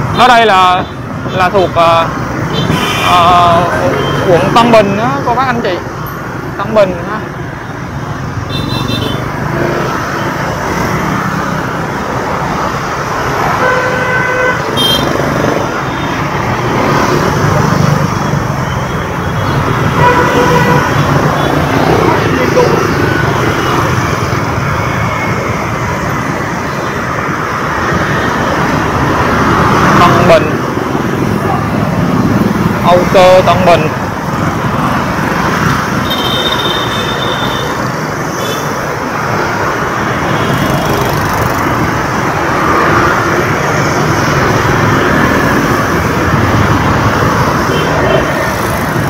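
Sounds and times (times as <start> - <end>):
city traffic rumble: 0.0 - 49.0.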